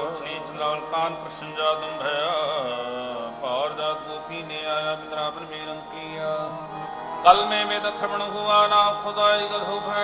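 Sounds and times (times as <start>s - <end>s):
harmonium held notes: 0.0s - 10.0s
man singing devotional phrase: 0.0s - 10.0s.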